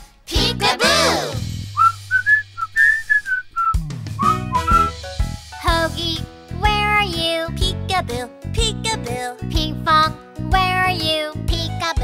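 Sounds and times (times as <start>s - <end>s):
children's song backing music: 0.0s - 1.6s, 4.2s - 12.0s
whistled tune: 1.7s - 5.0s
swooping sound effect: 1.8s - 5.0s
held bass note: 4.2s - 5.0s.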